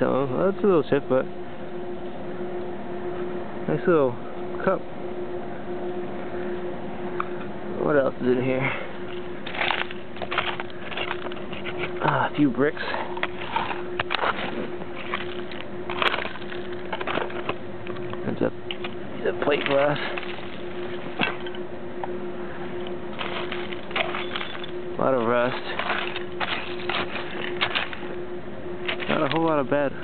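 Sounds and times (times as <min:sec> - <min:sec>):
rake scraping through dirt: 0:09.1 - 0:17.6, 0:18.8 - 0:21.5, 0:23.1 - 0:28.1, 0:28.8 - 0:30.0.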